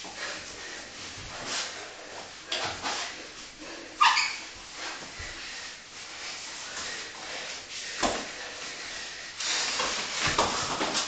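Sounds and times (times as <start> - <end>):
people breathing hard and grunting: 5.0 - 10.8.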